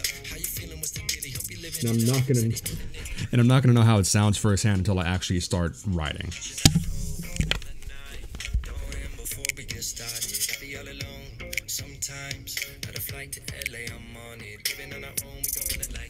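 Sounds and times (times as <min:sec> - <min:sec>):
song through helmet speakers: 0:00.0 - 0:04.8, 0:06.2 - 0:16.0.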